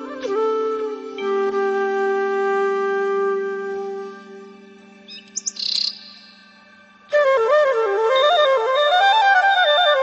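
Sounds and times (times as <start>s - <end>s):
small bird chirping: 5.1s - 6.4s.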